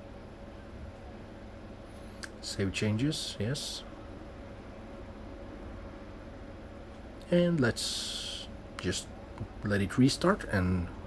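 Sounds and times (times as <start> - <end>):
faint low hum: 0.0 - 11.0
background hiss: 1.3 - 11.0.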